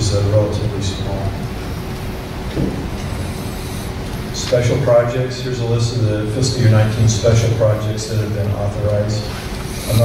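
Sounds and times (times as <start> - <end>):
faint hum: 0.0 - 10.0
microphone room rumble and hiss: 0.0 - 10.0.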